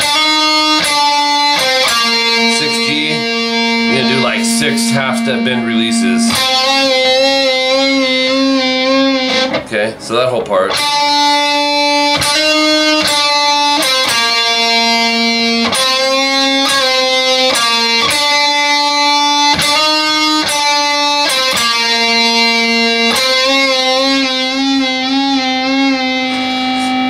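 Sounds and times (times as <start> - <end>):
distorted electric guitar lead: 0.0 - 27.0.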